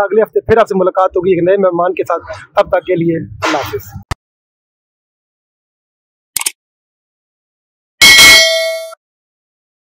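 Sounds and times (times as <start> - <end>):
bright metallic bell ding: 8.0 - 9.0.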